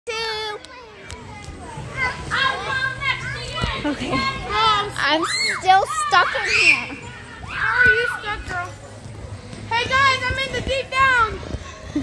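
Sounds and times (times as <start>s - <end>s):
children calling and chattering: 0.1s - 9.0s.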